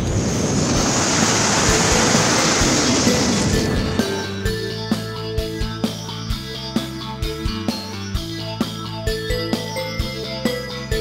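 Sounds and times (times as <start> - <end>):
loud rushing whoosh: 0.0 - 5.1
background music: 1.4 - 11.0.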